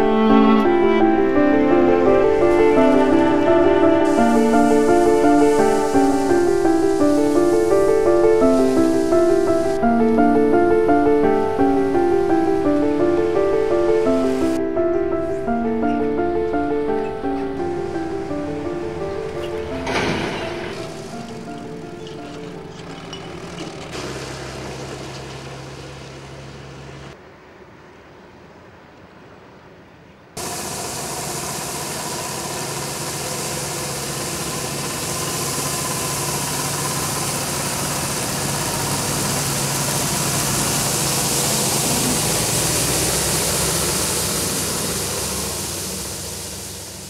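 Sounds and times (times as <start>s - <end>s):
street sweeper engine: 0.0s - 27.2s, 30.4s - 47.0s
vehicle engine hum: 0.0s - 47.0s
hiss of brush and water spray: 0.1s - 14.6s, 30.4s - 47.0s.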